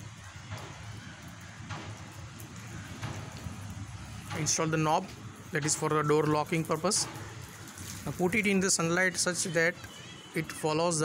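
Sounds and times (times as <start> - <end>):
plastic film crackling and rustling: 0.0 - 11.0.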